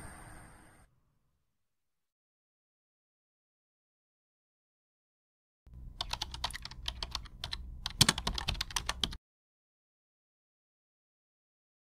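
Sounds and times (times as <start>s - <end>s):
keyboard typing clicks: 6.0s - 9.2s.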